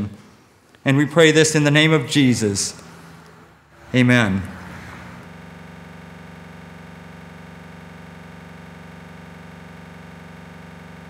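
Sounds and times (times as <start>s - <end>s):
person speaking: 0.8s - 2.9s, 3.8s - 4.8s
electronic drone: 2.7s - 11.0s.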